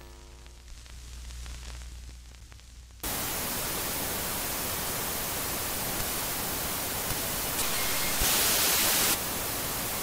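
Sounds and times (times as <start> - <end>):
television static hiss: 0.0 - 10.0.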